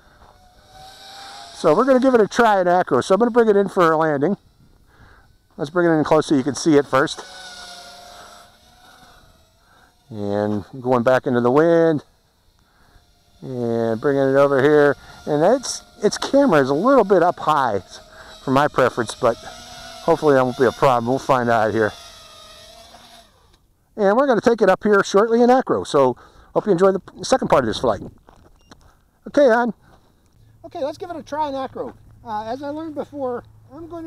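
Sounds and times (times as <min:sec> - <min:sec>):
drone motors whining: 0:00.0 - 0:23.7.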